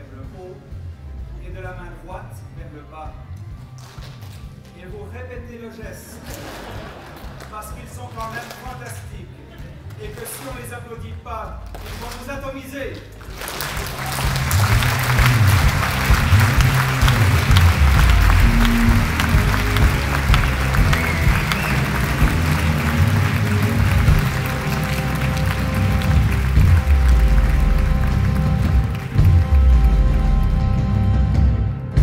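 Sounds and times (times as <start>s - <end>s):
live band music with heavy bass: 6.2s - 7.5s, 13.1s - 32.0s
audience clapping: 6.2s - 10.9s, 11.6s - 31.0s.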